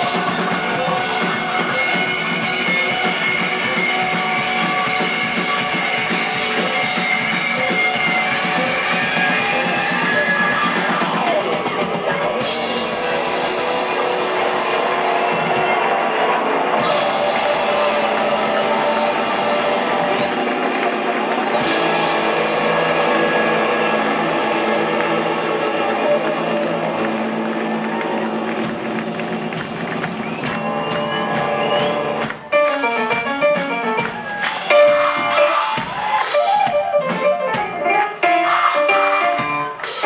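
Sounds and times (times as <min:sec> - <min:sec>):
drum kit: 0:00.0 - 0:40.0
electric guitars: 0:00.0 - 0:40.0.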